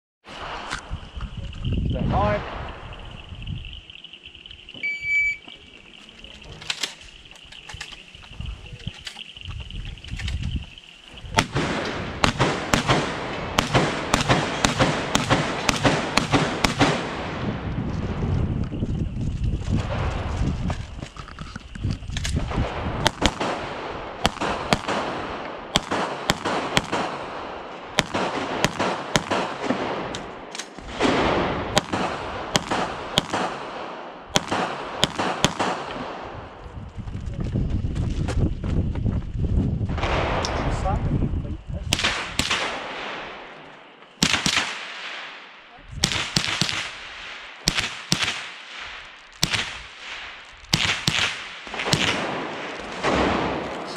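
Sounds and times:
shot timer beep: 4.8 - 5.4
pistol shots: 11.4 - 17.4, 22.4 - 36.3, 41.9 - 43.5, 44.2 - 53.9.

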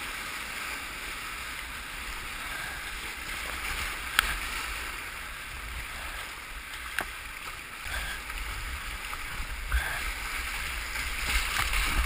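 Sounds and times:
whitewater rapids rushing: 0.0 - 12.0.

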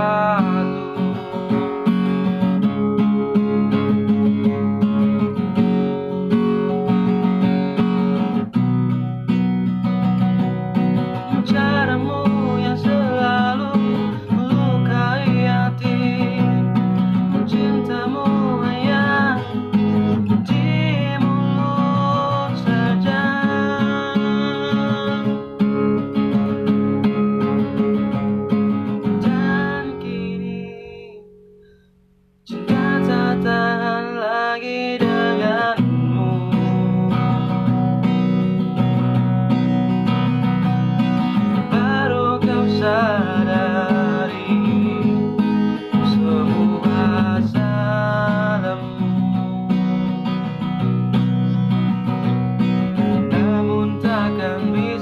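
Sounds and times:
man singing: 0.0 - 2.5, 11.1 - 26.0, 28.9 - 31.3, 32.4 - 38.4, 41.2 - 51.2, 53.0 - 55.0
strummed acoustic guitar: 0.0 - 55.0.

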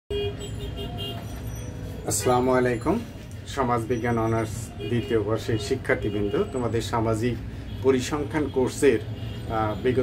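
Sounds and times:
road traffic rumble: 0.1 - 10.0.

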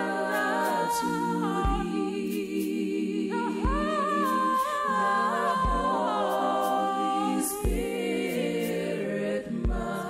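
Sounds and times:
soft low beat: 0.0 - 2.8, 3.5 - 4.1, 5.6 - 6.2, 7.6 - 8.4, 9.5 - 10.0
gospel vocal harmonies: 0.0 - 10.0.

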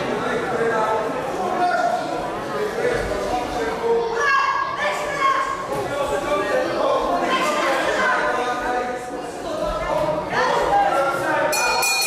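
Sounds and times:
crowd shouting and calling out: 0.0 - 12.0.

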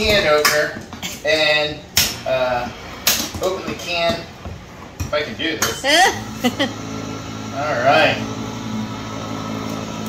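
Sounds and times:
electric can opener motor hum: 5.3 - 10.0.

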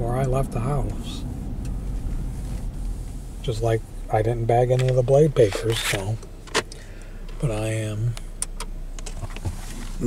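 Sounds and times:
car cabin hum: 0.0 - 10.0.

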